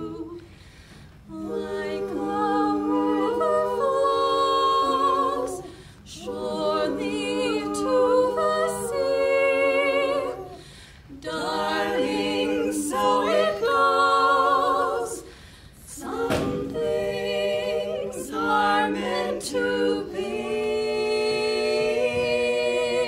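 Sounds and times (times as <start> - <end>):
women singing a cappella harmony: 0.0 - 23.0.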